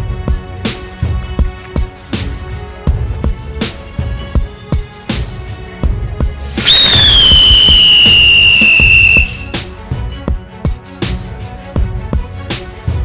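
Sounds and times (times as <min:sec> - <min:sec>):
background music with steady beat: 0:00.0 - 0:13.0
firecracker hiss: 0:06.4 - 0:09.6
firecracker shrill whistle: 0:06.6 - 0:09.6.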